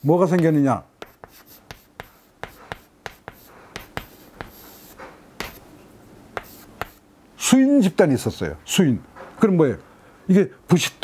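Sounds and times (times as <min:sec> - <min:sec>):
chalk tapping on chalkboard: 0:00.3 - 0:05.6, 0:06.4 - 0:07.0
chalk scratching: 0:00.4 - 0:05.7, 0:06.4 - 0:07.0.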